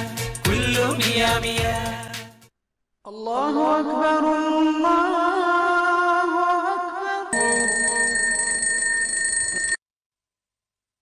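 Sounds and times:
electronic alarm clock ringing: 7.4s - 9.8s.

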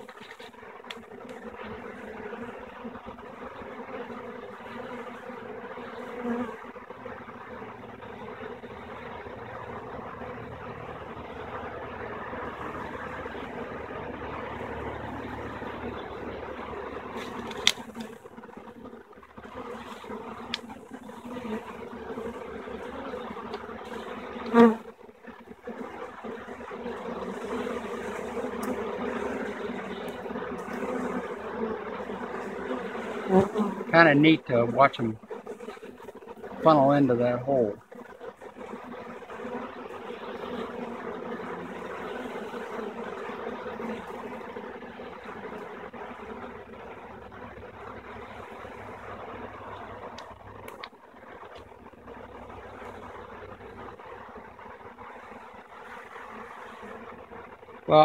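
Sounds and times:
bee swarm buzzing: 0.0s - 58.0s.

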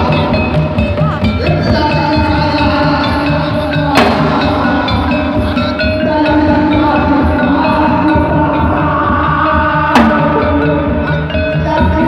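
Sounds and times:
hand drum pattern: 0.0s - 12.0s
struck metallophone notes: 0.0s - 12.0s.

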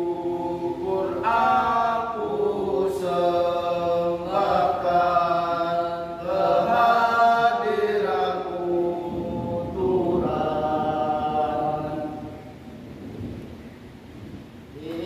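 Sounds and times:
men singing devotional song: 0.0s - 12.6s.

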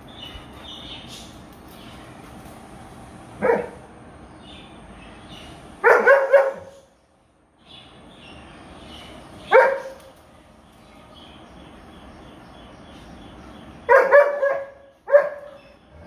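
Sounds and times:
dogs barking in play: 3.4s - 4.0s, 5.8s - 6.9s, 9.4s - 10.1s, 13.8s - 16.0s.

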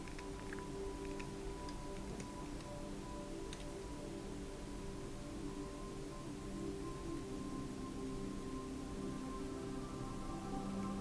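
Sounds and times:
light irregular clicks: 0.0s - 3.9s
soft spa music: 0.0s - 11.0s.

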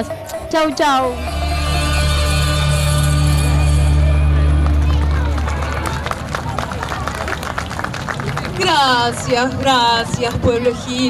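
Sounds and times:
stage music held low chord: 0.0s - 7.3s
audience voices: 1.1s - 10.8s
audience applauding: 3.6s - 9.7s.

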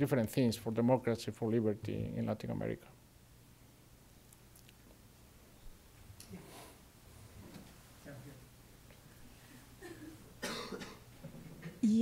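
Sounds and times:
faint room murmur: 0.0s - 12.0s
person coughing: 9.8s - 11.1s.

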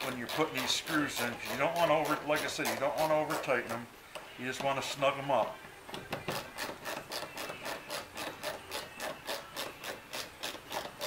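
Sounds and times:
screwdriver turning screw rasping: 0.0s - 3.8s, 6.1s - 11.0s.

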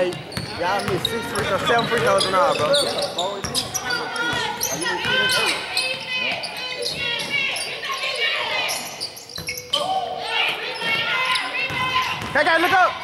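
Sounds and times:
sneakers squeaking on hardwood: 0.0s - 12.6s
basketball bouncing: 11.6s - 12.8s.

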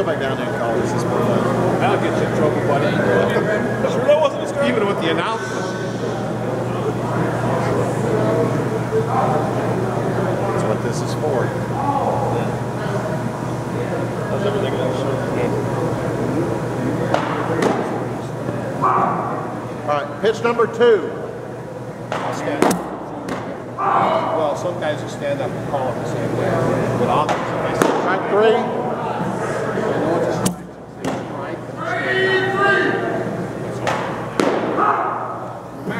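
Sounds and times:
murmur of voices: 0.0s - 35.9s
steady low hum: 0.0s - 35.9s.

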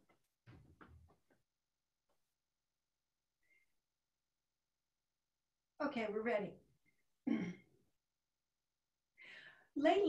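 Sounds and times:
person clearing throat: 7.3s - 7.7s.

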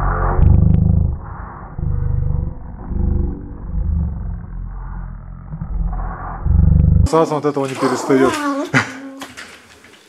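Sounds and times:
small dog growling: 7.8s - 9.4s.

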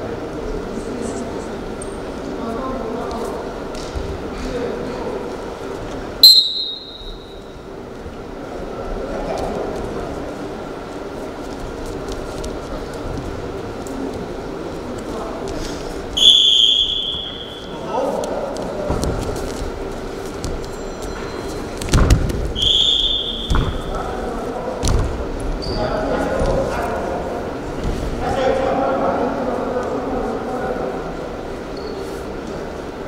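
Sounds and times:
referee's whistle blasts: 6.2s - 7.4s, 16.2s - 17.7s, 22.6s - 23.9s
voices shouting in a hall: 15.3s - 19.1s, 22.5s - 33.0s.

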